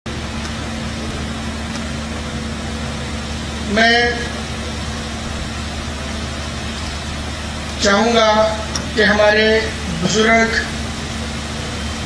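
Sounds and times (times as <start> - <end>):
low electrical hum: 0.1 - 12.0.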